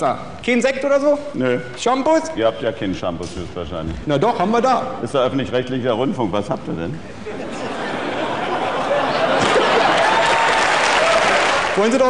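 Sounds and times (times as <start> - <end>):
audience applauding: 8.8 - 12.0.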